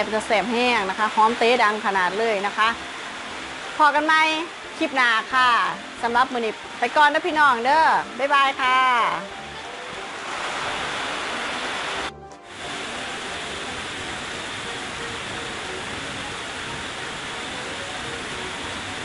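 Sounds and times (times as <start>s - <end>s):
steady hissing noise: 0.0s - 19.0s.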